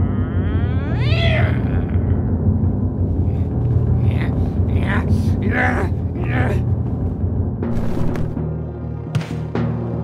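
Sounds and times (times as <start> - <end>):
high wavering vocal cry: 0.0 - 2.3
low drone: 0.0 - 9.1.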